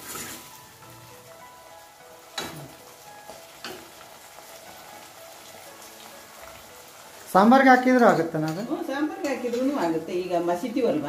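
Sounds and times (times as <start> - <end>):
stew bubbling and sizzling: 0.0 - 11.0.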